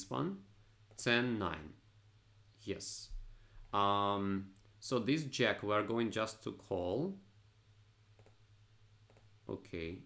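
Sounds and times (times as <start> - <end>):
low steady hum: 0.0 - 10.0
computer mouse clicks: 8.2 - 8.4, 9.1 - 9.3.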